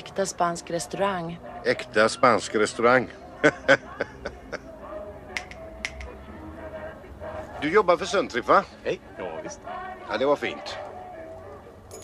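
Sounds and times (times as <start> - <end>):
finger snaps: 5.4 - 6.1.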